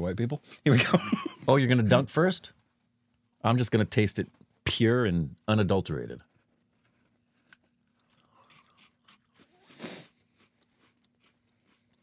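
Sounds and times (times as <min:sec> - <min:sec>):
person chewing crisp biscuit: 0:06.4 - 0:12.0.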